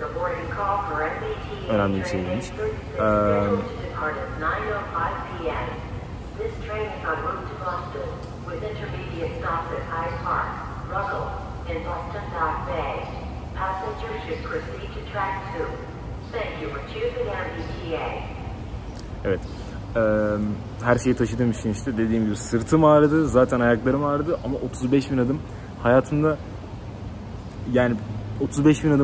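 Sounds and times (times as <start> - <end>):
background voices talking: 0.0 - 26.8
steady low hum: 0.0 - 29.0.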